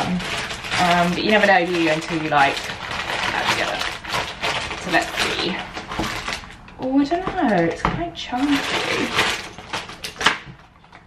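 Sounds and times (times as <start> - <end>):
paper packaging rustling: 0.0 - 11.0.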